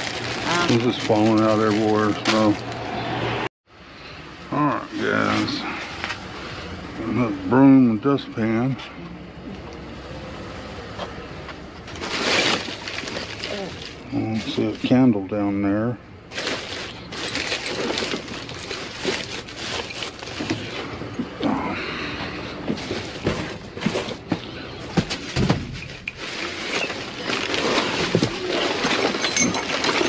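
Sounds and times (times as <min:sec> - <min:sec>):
plastic bags rustling: 0:00.0 - 0:02.9, 0:11.9 - 0:15.1, 0:16.3 - 0:21.1, 0:22.5 - 0:30.0
items clicking and knocking: 0:16.4 - 0:21.3, 0:22.6 - 0:30.0.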